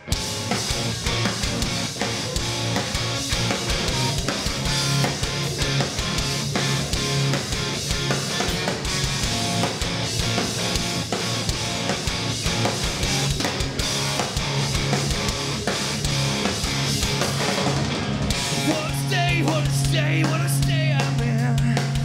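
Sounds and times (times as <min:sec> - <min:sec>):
distorted electric guitars: 0:00.0 - 0:22.0
driving drum kit: 0:00.0 - 0:22.0.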